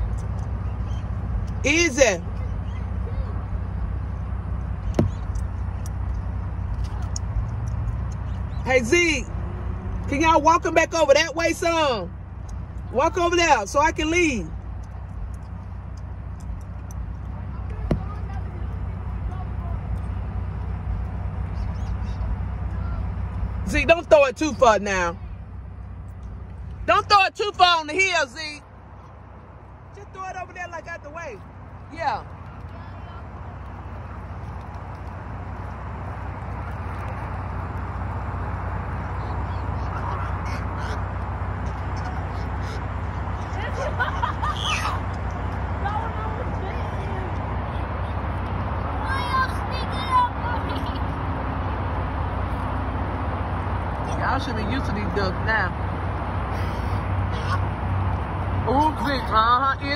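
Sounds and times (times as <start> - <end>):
faint voices outside: 0.0 - 53.1, 53.7 - 59.9
car engine idling: 0.0 - 59.9
steady low rumble: 0.0 - 59.9
geese honking: 39.0 - 45.2.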